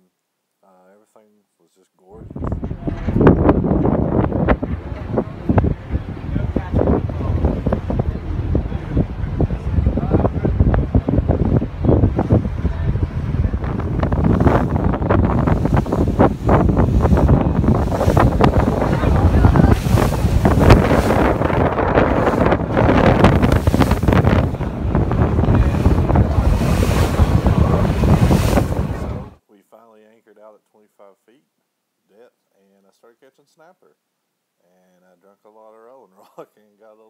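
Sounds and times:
water rushing along hull: 2.2 - 29.4
wind buffeting microphone: 2.2 - 29.4.

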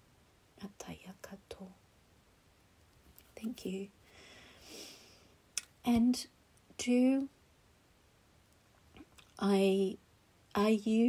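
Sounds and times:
woman whispering: 0.6 - 1.8.

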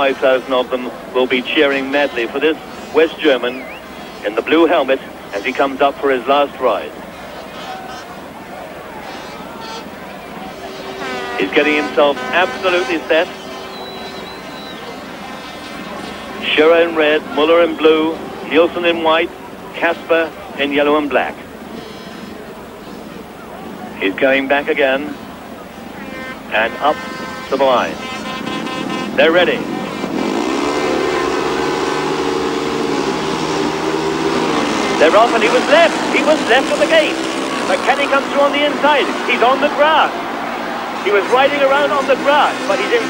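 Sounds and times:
motorcycle engines revving: 0.0 - 20.7, 24.7 - 43.0
stadium crowd hubbub: 0.0 - 43.0
thin high whistle: 13.4 - 15.0.

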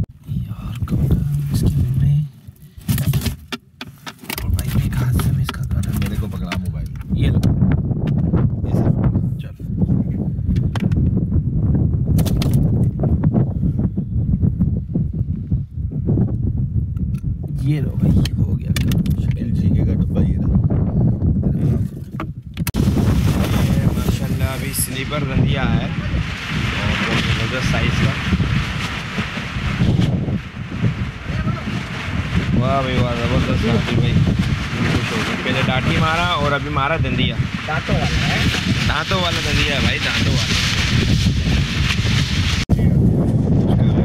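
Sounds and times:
wind buffeting microphone: 0.0 - 3.4, 4.4 - 44.0.

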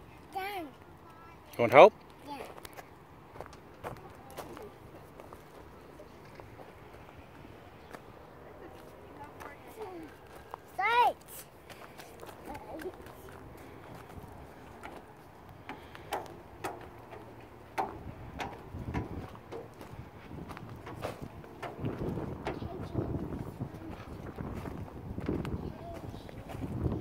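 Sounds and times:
footsteps on metal stairs: 12.2 - 27.0.

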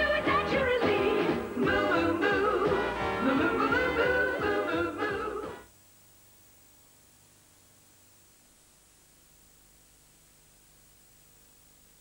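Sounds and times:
advertising jingle singing over band: 0.0 - 5.6.

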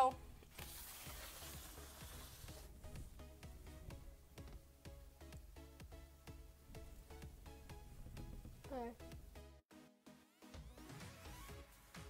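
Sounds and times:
light music with ticking beat: 0.0 - 12.0.

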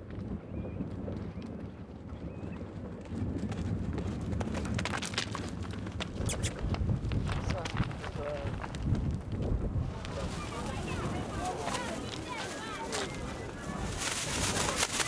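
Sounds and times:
footsteps crunching on gravel: 3.5 - 15.0.

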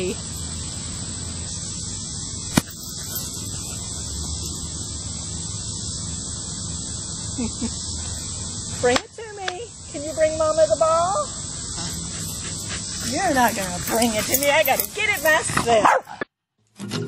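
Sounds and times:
high-pitched insect chorus: 0.0 - 16.2.

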